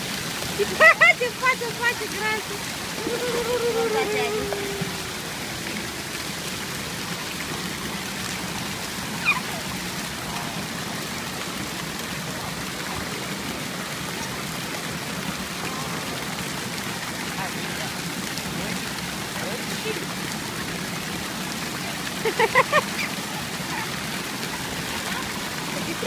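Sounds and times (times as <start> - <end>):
fountain jets splashing into pool: 0.0 - 26.0.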